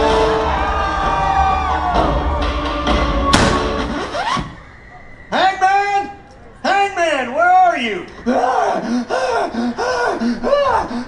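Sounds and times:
person making gasping cries: 0:08.3 - 0:11.0.

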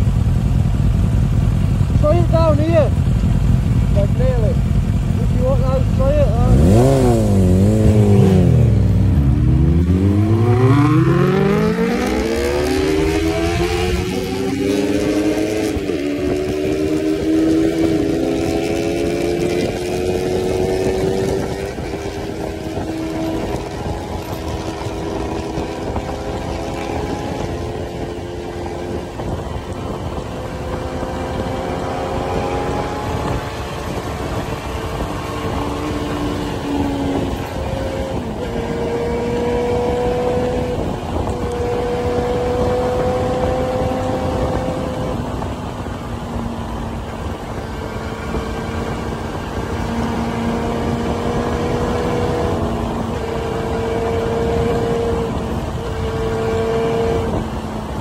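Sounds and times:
motorcycle engine accelerating hard: 0:00.0 - 0:58.0
rush of wind: 0:00.0 - 0:58.0.

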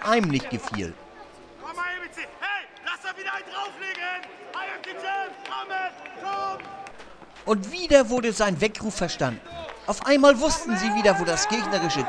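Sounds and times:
man shouting: 0:10.4 - 0:12.0.

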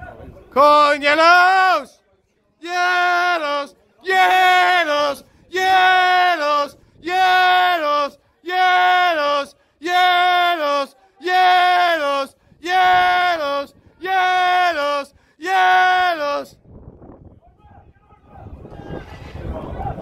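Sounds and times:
football supporter chanting: 0:02.6 - 0:16.5.

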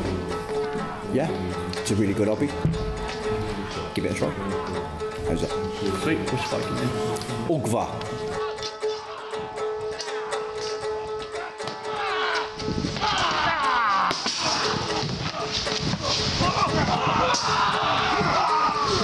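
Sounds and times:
background music held note: 0:00.0 - 0:12.9
crowd shouting and yelling: 0:08.3 - 0:19.0.

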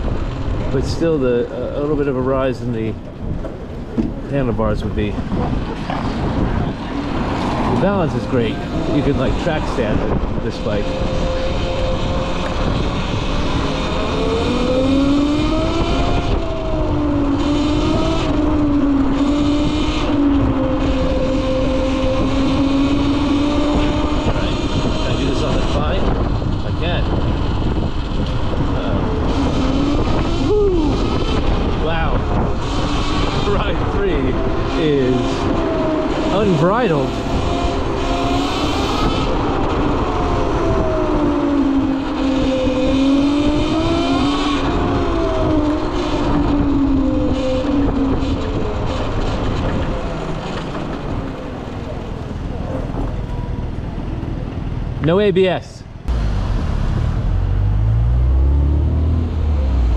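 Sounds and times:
riding noise rush: 0:00.0 - 0:59.9.

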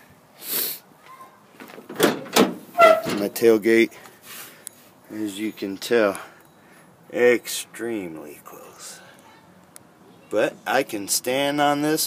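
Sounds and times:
metal tailgate clunks: 0:01.6 - 0:03.4.

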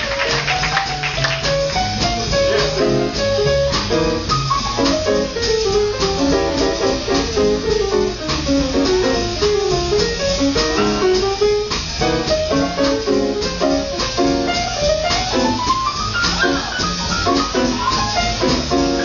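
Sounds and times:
swing band playing: 0:00.0 - 0:19.0.

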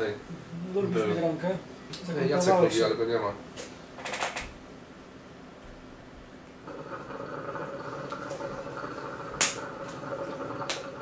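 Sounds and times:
hookah water bubbling: 0:06.6 - 0:11.0.

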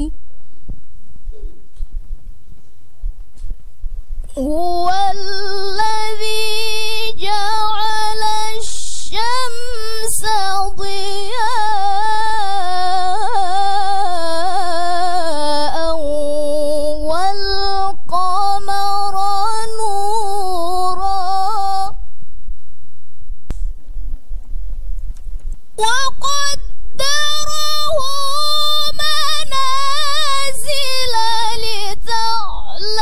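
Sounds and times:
woman reciting melodically: 0:00.0 - 0:00.2, 0:04.3 - 0:22.2, 0:25.8 - 0:33.0.

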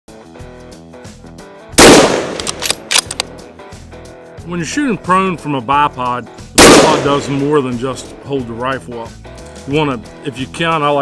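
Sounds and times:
music: 0:00.1 - 0:11.0
loud rifle shot: 0:01.8 - 0:03.2, 0:06.6 - 0:07.6
sharp cracks: 0:01.8 - 0:03.3, 0:06.6 - 0:07.6.

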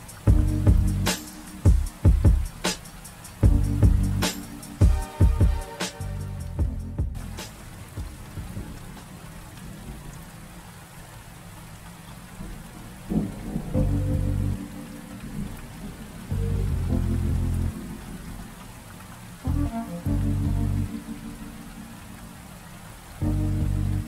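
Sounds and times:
steady rain falling: 0:00.0 - 0:24.0
deep sustained music notes: 0:03.4 - 0:07.4, 0:13.1 - 0:18.8, 0:19.4 - 0:22.4, 0:23.1 - 0:24.0.

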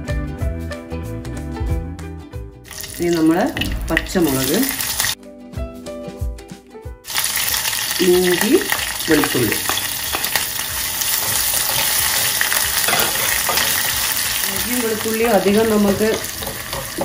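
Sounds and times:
food sizzling in hot oil: 0:02.7 - 0:05.2, 0:07.0 - 0:17.0.

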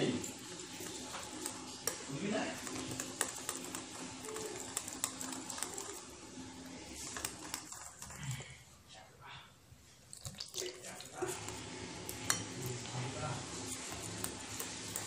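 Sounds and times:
utensil beating batter in bowl: 0:00.0 - 0:08.8, 0:10.0 - 0:15.0
metal clicking against bowl: 0:00.2 - 0:06.0.

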